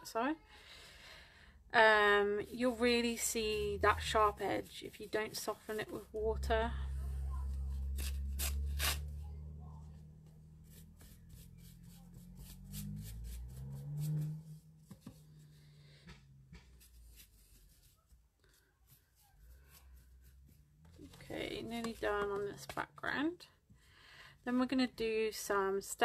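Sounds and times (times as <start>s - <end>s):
paintbrush strokes on paper: 9.8s - 15.5s, 16.6s - 22.8s.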